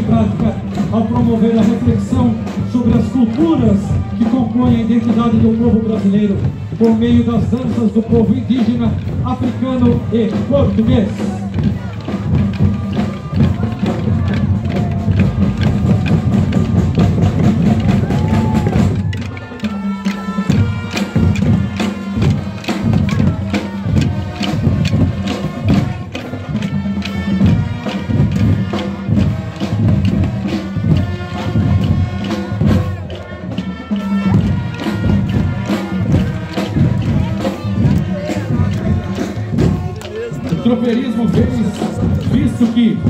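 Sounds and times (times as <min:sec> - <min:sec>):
drums and percussion music: 0:00.0 - 0:43.0.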